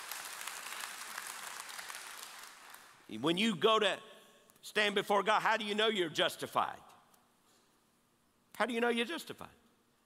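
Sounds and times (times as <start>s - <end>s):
congregation applauding: 0.0s - 3.1s.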